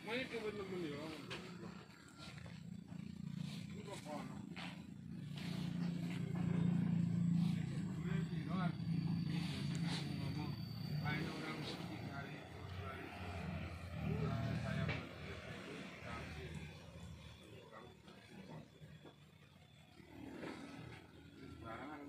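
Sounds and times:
indistinct voices: 0.0s - 18.9s
low motor hum: 0.0s - 22.0s.

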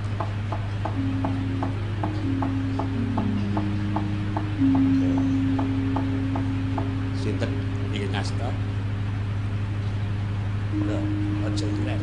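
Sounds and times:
steady ticking beat: 0.0s - 9.6s, 10.2s - 12.0s
melody of long held notes: 0.0s - 12.0s
steady low hum: 0.0s - 12.0s.

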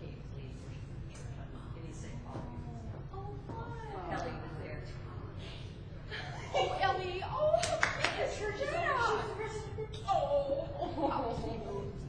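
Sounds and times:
people talking and chuckling: 3.8s - 12.0s.

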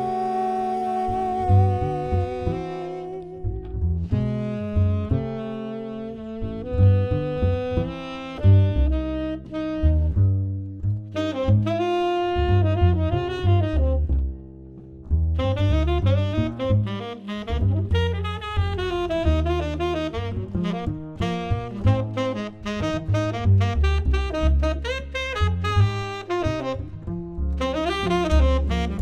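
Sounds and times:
tenor saxophone jazz solo: 0.0s - 14.5s, 15.2s - 29.0s
plucked double bass: 0.0s - 29.0s.

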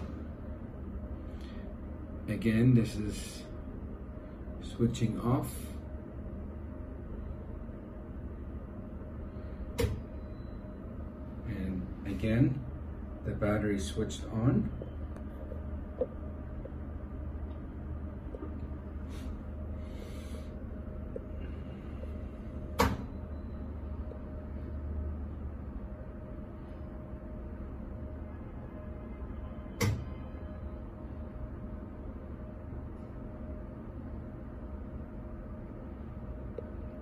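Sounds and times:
electrical low hum: 0.0s - 37.0s
sharp relay clicks: 29.8s - 30.1s.

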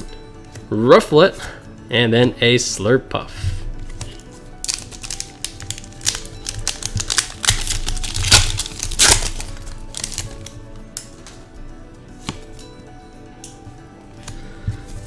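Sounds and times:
soft background music: 0.0s - 15.0s
foil wrapper crinkling and tearing: 4.2s - 10.6s.

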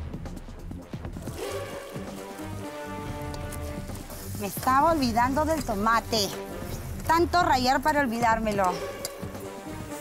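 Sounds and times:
background music: 0.0s - 10.0s
liquid pouring and splashing: 1.2s - 7.1s.

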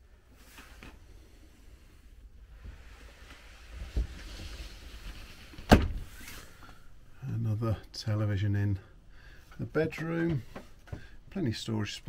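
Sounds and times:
faint rustling: 0.2s - 7.8s.

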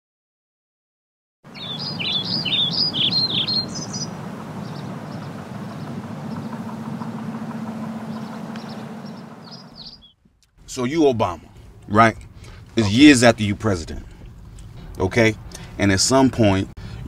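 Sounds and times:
birds chirping: 1.5s - 15.8s
freeway traffic hum: 1.5s - 17.0s.

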